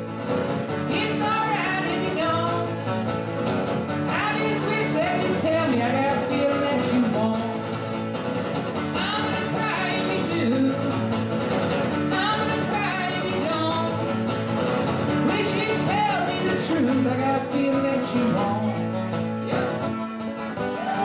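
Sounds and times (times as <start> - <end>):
strummed acoustic guitar: 0.0 - 21.0
man singing: 4.1 - 7.8, 9.0 - 11.0, 15.2 - 21.0.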